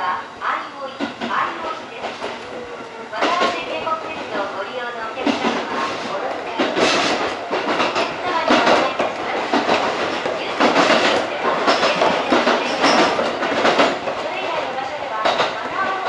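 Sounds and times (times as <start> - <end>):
train wheels rumbling on rail: 0.0 - 16.0.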